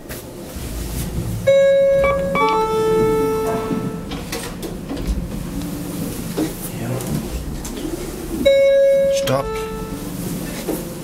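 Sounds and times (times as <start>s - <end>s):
elevator chime steady tone: 1.3s - 4.6s, 8.4s - 10.6s.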